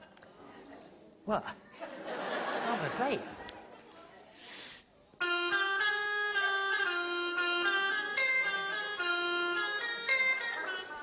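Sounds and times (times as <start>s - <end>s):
reedy organ-like keyboard melody: 5.2s - 11.0s.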